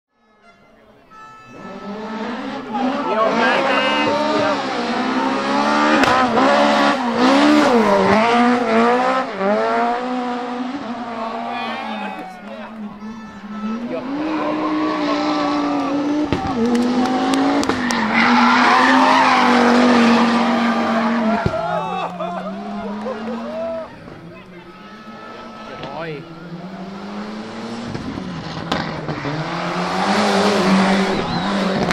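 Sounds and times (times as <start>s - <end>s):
rally car engines revving: 1.1s - 31.9s
exhaust pops and bangs: 5.9s - 6.6s, 15.8s - 18.1s, 21.3s - 21.8s, 27.8s - 29.3s, 31.1s - 31.9s
tyres squealing: 11.4s - 26.8s.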